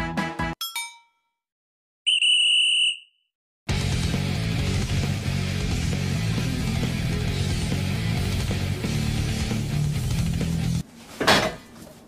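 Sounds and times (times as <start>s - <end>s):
background music: 0.0s - 0.6s, 3.7s - 10.8s
ringing ding: 0.6s - 1.4s.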